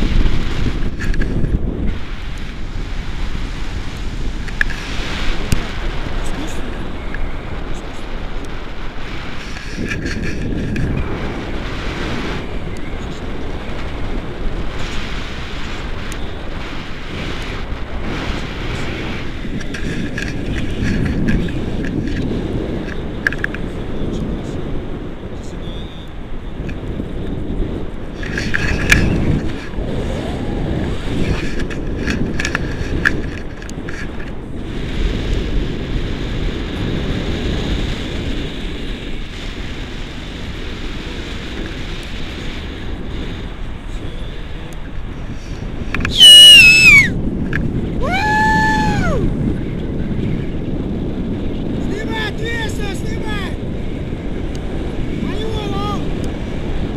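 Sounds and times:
wind rushing over microphone: 0.0 - 56.9.

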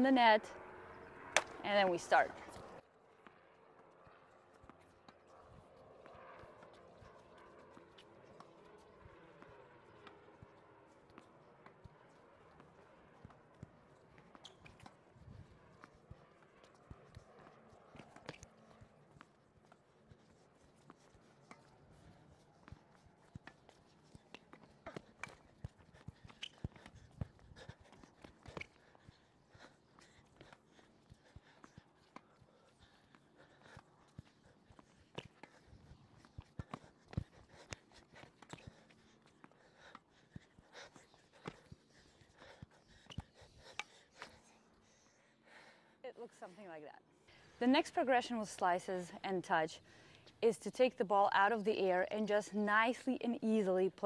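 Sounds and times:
tennis balls bouncing on court: 1.2 - 3.4
tennis balls struck: 1.3 - 2.1.

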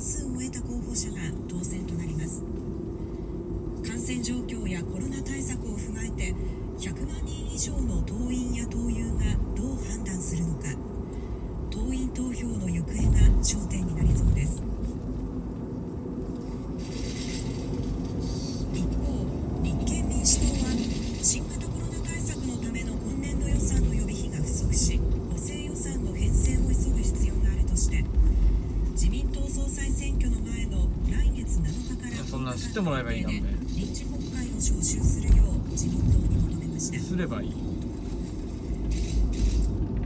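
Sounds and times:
car engine and road rumble: 0.0 - 40.0.

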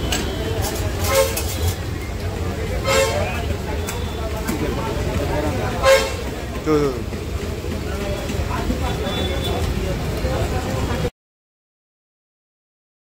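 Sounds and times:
vehicle horn toots: 0.0 - 1.8, 2.8 - 4.2, 5.8 - 6.3, 8.9 - 9.7
low traffic rumble: 0.0 - 11.1
voices: 0.0 - 11.1.

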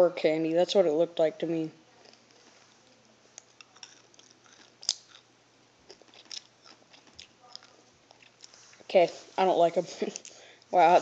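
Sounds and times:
person crunching candies: 3.4 - 8.8.

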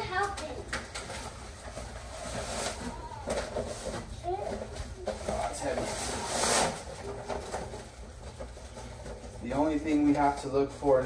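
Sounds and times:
plastic bag rustling: 1.0 - 11.0.

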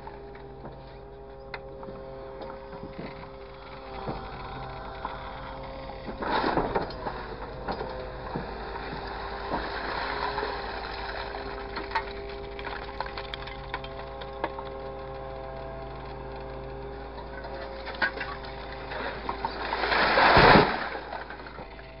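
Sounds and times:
hydraulic whine of loader: 0.0 - 22.0.

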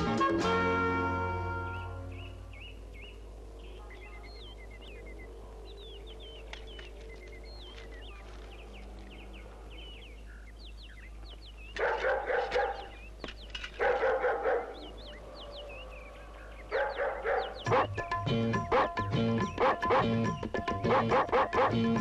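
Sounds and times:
birds chirping: 1.0 - 22.0
dog barking: 11.8 - 13.0, 13.7 - 18.0, 18.6 - 20.2, 20.9 - 21.9
music with steady beat: 17.7 - 22.0.

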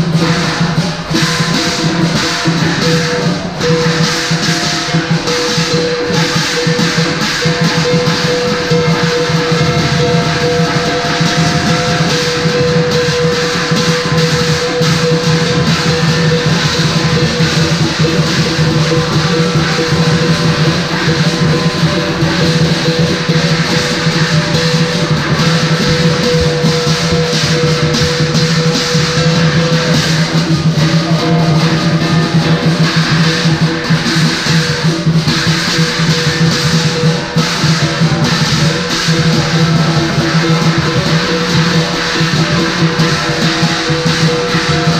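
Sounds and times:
cymbals clashing: 0.0 - 44.9
drum beating: 0.0 - 44.9
gong ringing: 0.0 - 44.9.

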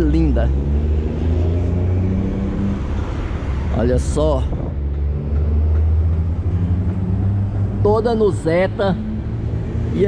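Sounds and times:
vehicle engine rumble: 0.0 - 10.0.

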